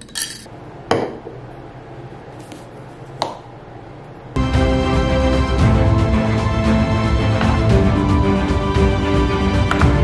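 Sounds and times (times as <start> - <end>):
teaspoon clinking glass mug: 0.0 - 0.5.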